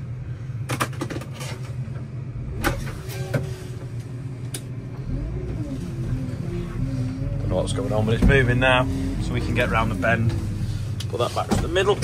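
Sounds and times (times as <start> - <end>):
machine engine running: 3.5 - 12.0.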